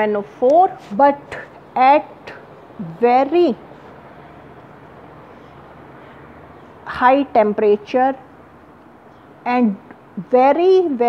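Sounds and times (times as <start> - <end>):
woman's voice: 0.0 - 3.7, 6.9 - 8.3, 9.5 - 11.0
low background hiss: 0.0 - 11.0.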